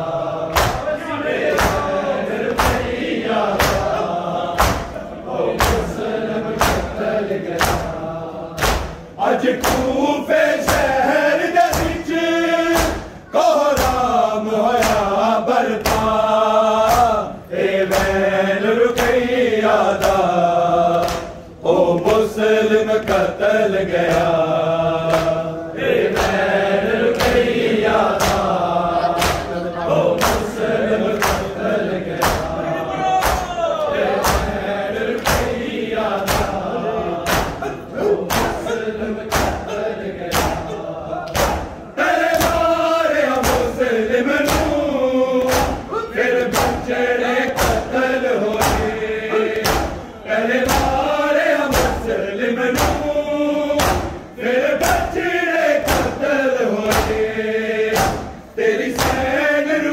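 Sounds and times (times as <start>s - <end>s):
men chanting in unison: 0.0s - 59.9s.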